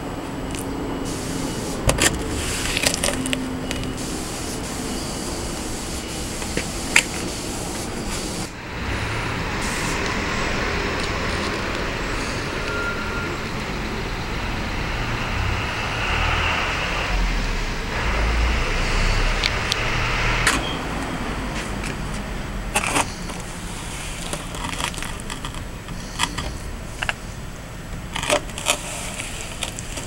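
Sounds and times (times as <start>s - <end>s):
machinery rumbling: 0.0s - 30.0s
steady hiss: 0.1s - 20.4s, 23.2s - 27.9s.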